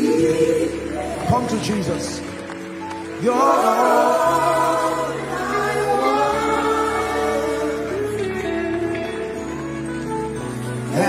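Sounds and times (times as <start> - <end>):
choir singing gospel song: 0.0 - 2.1, 3.1 - 9.3.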